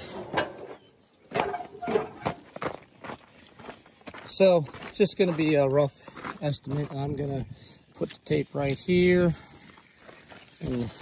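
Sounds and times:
footsteps on gravel: 0:01.3 - 0:11.0.

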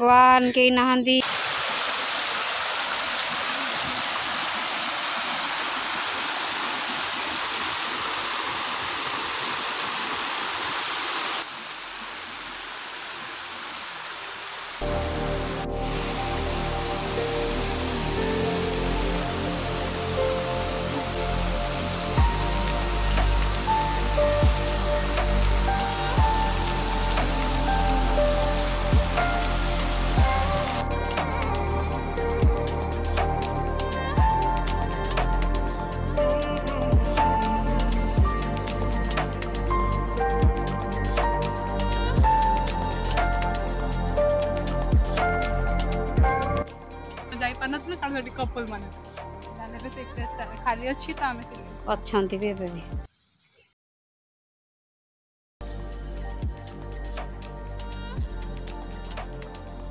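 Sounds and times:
stream water rushing over rock: 0:01.2 - 0:31.4
background music with bass: 0:14.8 - 0:53.0, 0:55.6 - 0:59.9.

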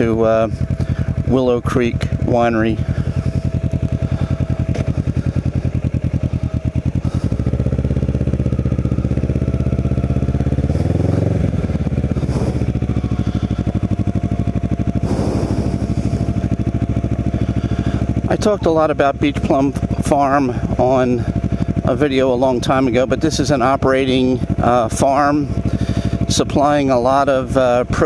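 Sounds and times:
motorcycle engine revving: 0:00.0 - 0:28.0.

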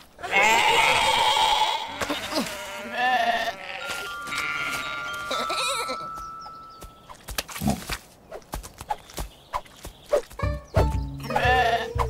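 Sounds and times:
cartoon sheep bleating: 0:00.2 - 0:06.0, 0:11.2 - 0:12.0
background music held tones: 0:04.0 - 0:07.3, 0:10.4 - 0:12.0.

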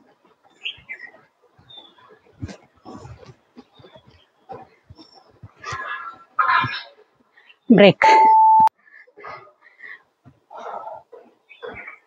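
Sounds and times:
timer beep: 0:08.0 - 0:08.7
person breathing hard: 0:08.8 - 0:10.8.

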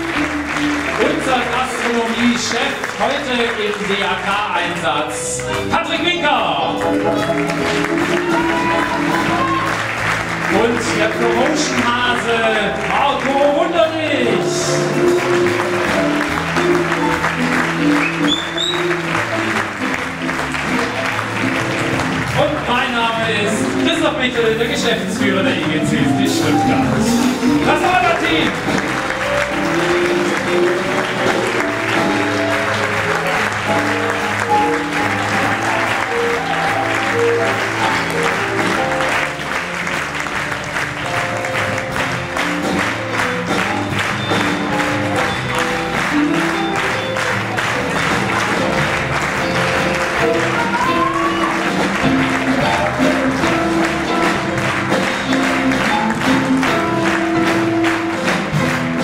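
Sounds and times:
audience applause: 0:00.0 - 0:59.0
live band music: 0:00.0 - 0:59.0.

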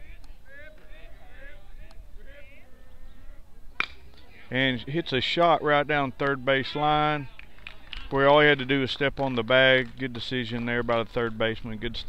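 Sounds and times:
faint background voices: 0:00.0 - 0:12.0
baseball bat striking ball: 0:03.7 - 0:04.3.

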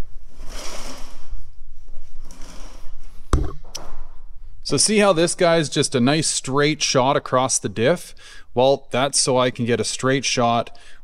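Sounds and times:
footsteps: 0:03.0 - 0:04.2
sharp knock: 0:03.3 - 0:04.0.

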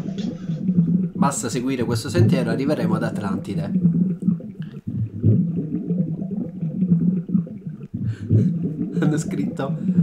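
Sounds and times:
muffled underwater rumbling and gurgling: 0:00.0 - 0:10.0.

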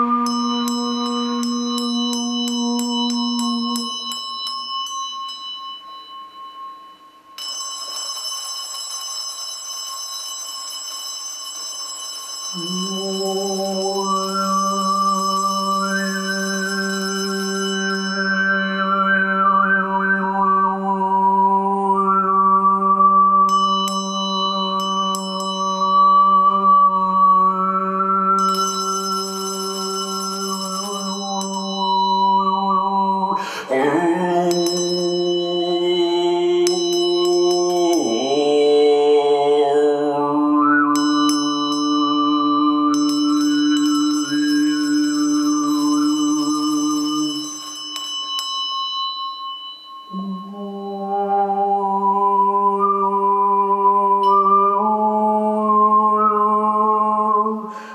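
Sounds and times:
overtone singing: 0:00.0 - 0:05.2, 0:12.4 - 0:48.4, 0:50.0 - 0:57.9
handbell ringing: 0:00.3 - 0:18.6, 0:23.5 - 0:26.4, 0:28.4 - 0:32.5, 0:34.3 - 0:38.7, 0:41.0 - 0:50.5.

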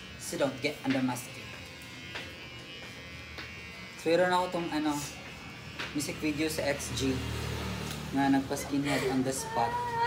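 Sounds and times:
electric hair clipper buzzing: 0:00.0 - 0:10.0.

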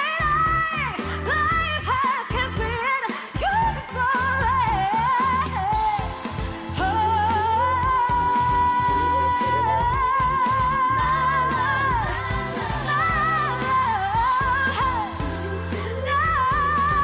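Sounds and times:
band bass and drums: 0:00.0 - 0:17.0
woman singing pop: 0:00.0 - 0:17.0.

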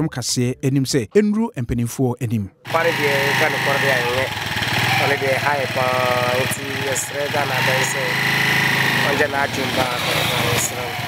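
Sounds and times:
people talking: 0:00.0 - 0:04.3, 0:05.0 - 0:08.2, 0:09.0 - 0:11.0
small engine running: 0:02.7 - 0:11.0.

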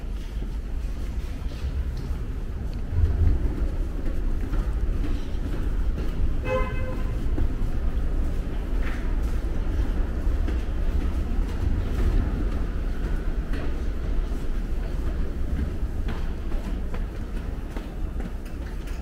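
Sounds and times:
subway train rumble: 0:00.0 - 0:19.0
train horn toot: 0:06.4 - 0:07.4.

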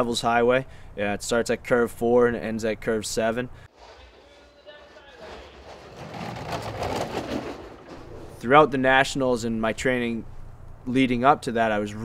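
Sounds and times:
sled runners sliding on ice: 0:03.7 - 0:08.7.

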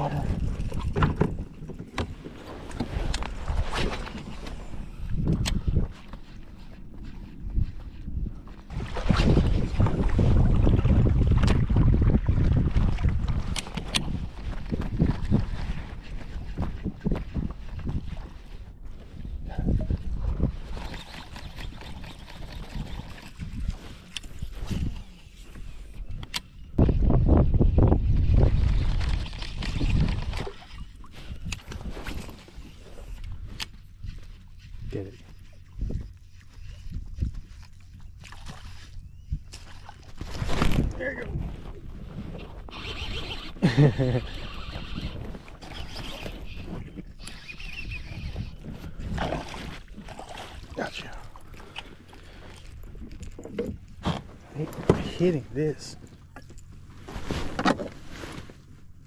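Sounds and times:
water lapping at kayak hull: 0:00.0 - 0:26.0, 0:28.6 - 0:59.0
wind buffeting microphone: 0:02.8 - 0:53.9.

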